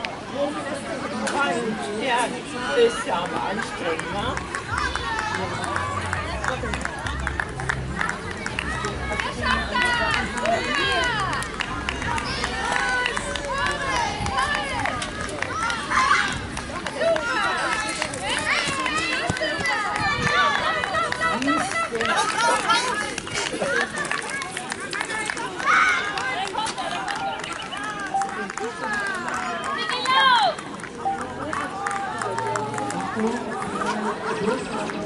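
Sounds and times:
crowd talking and calling out: 0.0 - 35.0.

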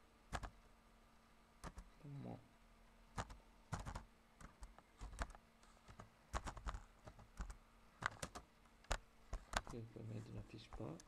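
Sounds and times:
typing on computer keyboard: 0.3 - 0.6, 1.6 - 1.9, 3.2 - 9.8.

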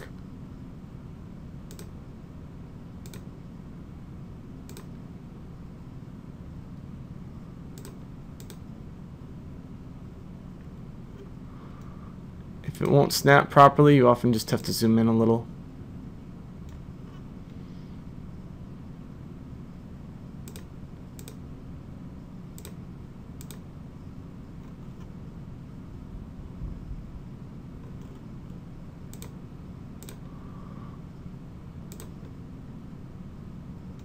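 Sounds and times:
steady low hum: 0.0 - 34.0
computer mouse clicking: 1.6 - 2.0, 3.0 - 3.3, 4.6 - 5.0, 7.7 - 8.7, 20.4 - 21.4, 22.5 - 22.8, 23.4 - 23.6, 27.8 - 29.4, 30.0 - 30.3, 31.9 - 32.4.

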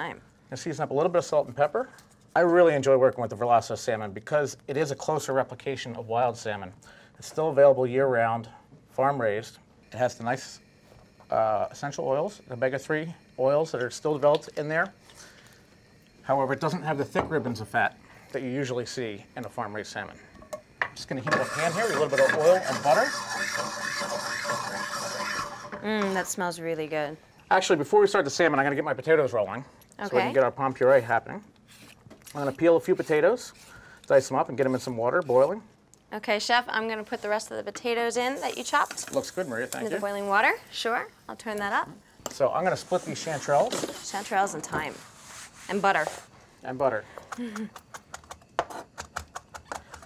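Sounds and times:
oil and butter sizzling: 11.4 - 26.6, 37.3 - 41.9.

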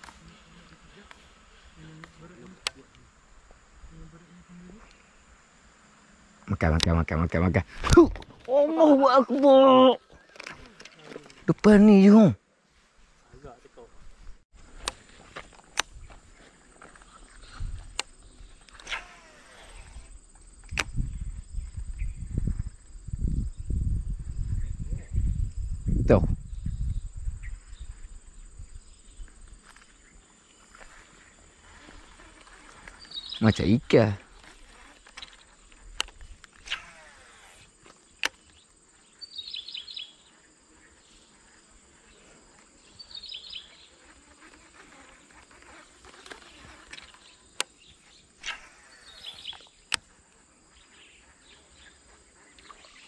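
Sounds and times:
high-pitched insect drone: 16.8 - 53.0
fishing reel spool whirring: 18.6 - 20.2
bird chirping: 26.5 - 33.8, 38.1 - 41.0, 42.8 - 44.0, 46.5 - 50.0.

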